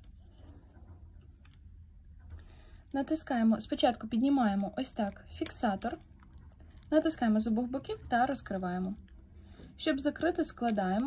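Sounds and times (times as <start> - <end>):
watch bracelet handling: 4.5 - 7.7.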